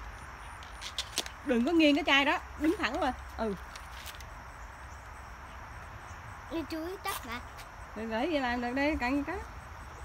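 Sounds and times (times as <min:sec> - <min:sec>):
insect chirring: 0:00.0 - 0:10.0.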